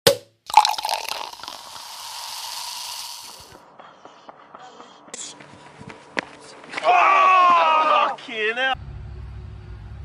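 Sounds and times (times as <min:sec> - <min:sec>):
hiss: 0:01.6 - 0:03.6.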